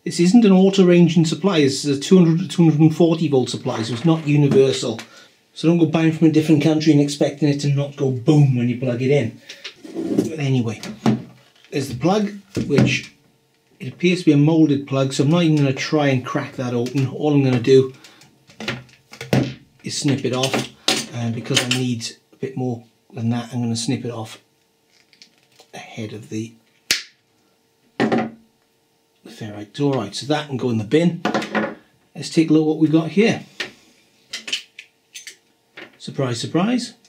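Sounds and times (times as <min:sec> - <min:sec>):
hands rustling cable: 0:24.9 - 0:25.8.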